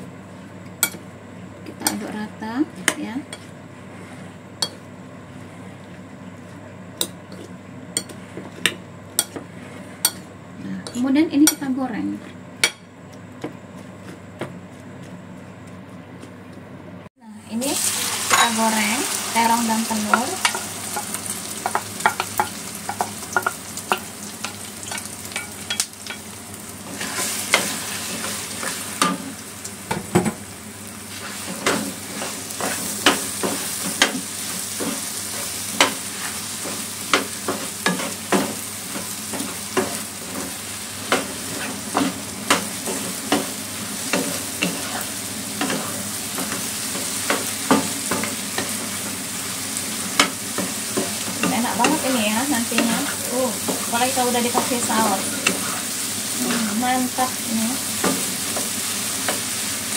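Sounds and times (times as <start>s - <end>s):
spatula scraping and tapping pan: 7.0s - 10.3s, 19.5s - 26.3s, 31.1s - 49.2s, 50.0s - 55.9s
eggplant sizzling in oil: 17.4s - 59.9s.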